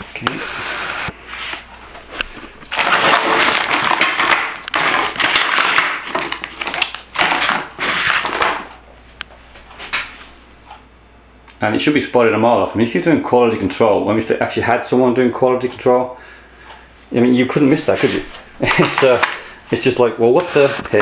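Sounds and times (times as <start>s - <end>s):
plastic packaging crinkling: 0.3s - 8.8s, 17.9s - 21.0s.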